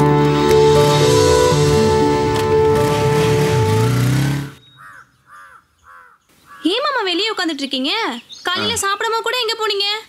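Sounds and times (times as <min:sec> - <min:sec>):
background film music: 0:00.0 - 0:04.6
crow cawing: 0:04.7 - 0:06.8.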